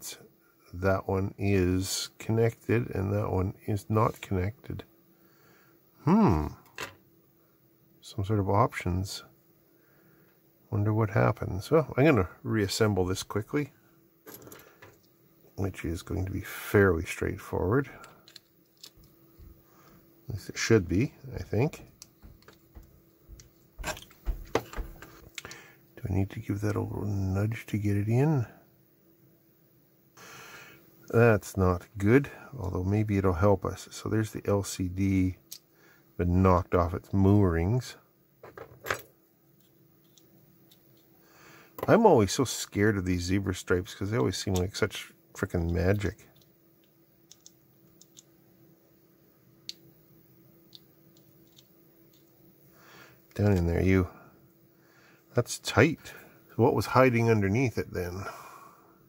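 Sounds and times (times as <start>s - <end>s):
faint steady hum: 0.0s - 59.0s
plastic parts clicking: 18.0s - 19.1s, 45.9s - 48.3s, 50.7s - 52.3s.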